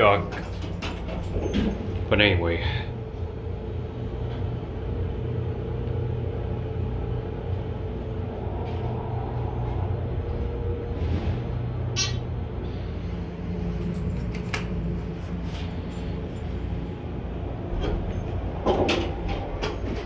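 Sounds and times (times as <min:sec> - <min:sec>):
elevator hum and rumble: 0:00.0 - 0:20.0.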